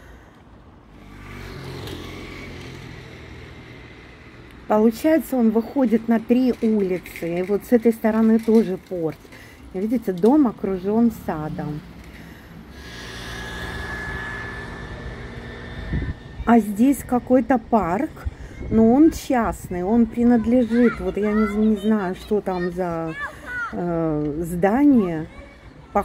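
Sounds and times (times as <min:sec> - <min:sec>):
vehicle engine hum passing: 0:00.0 - 0:07.8, 0:09.2 - 0:18.7
engine drone with high whine: 0:11.9 - 0:18.6.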